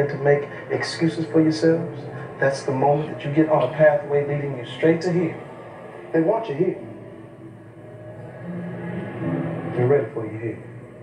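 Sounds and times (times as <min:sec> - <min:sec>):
faint low drone: 0:00.0 - 0:11.0.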